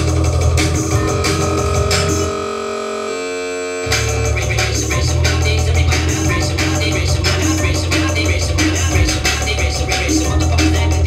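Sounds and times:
held synth chord: 0:00.0 - 0:04.9
heavy bass-driven electronic beat: 0:00.0 - 0:11.0.

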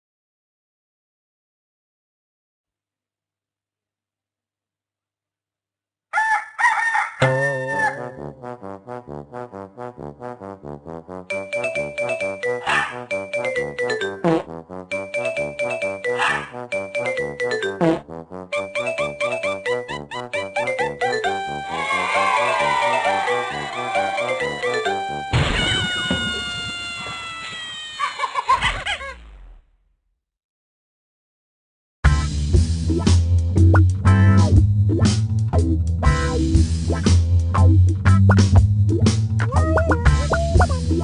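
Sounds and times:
rooster crowing: 0:06.1 - 0:08.1, 0:21.7 - 0:24.5
music: 0:07.2 - 0:25.4, 0:32.0 - 0:41.0
crash sound effect: 0:25.3 - 0:29.8.

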